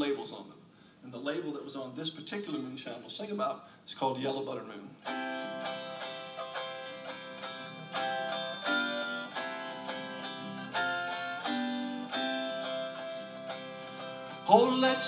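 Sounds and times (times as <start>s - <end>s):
stringed instrument strumming chords: 5.0s - 15.0s.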